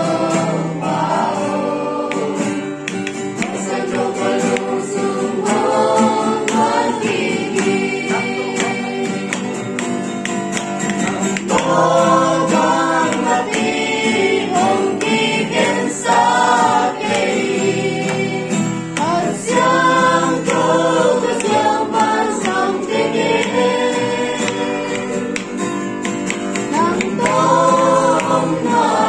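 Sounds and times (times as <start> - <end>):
group singing in unison: 0.0 - 29.0
strummed acoustic guitar: 0.0 - 29.0.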